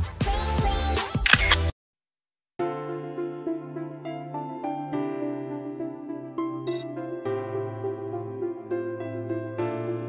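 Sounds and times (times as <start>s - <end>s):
upbeat music with a beat: 0.0s - 1.2s.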